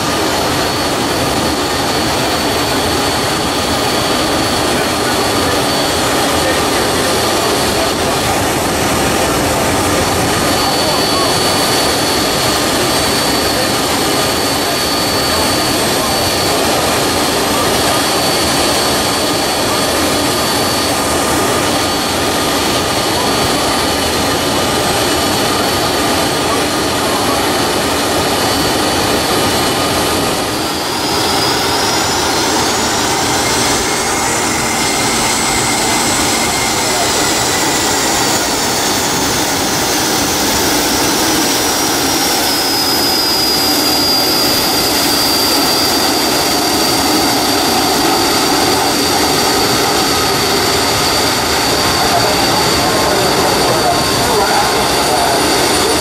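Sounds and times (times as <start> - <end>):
high engine whine: 0.0 - 56.0
jet engines running: 0.0 - 56.0.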